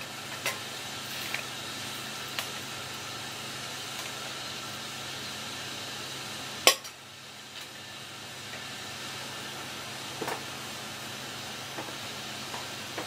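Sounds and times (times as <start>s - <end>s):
pot simmering hiss: 0.0s - 13.0s.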